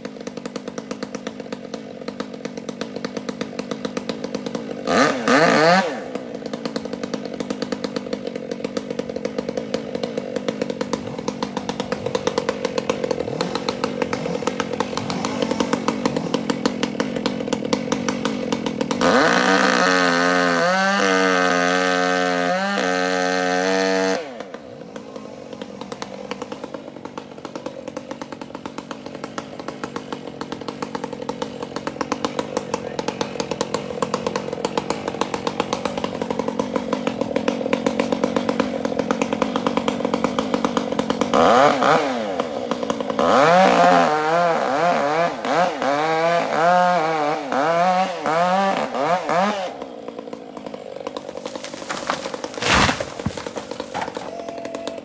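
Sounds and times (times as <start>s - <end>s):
chainsaw idling and revving: 0.0s - 55.0s.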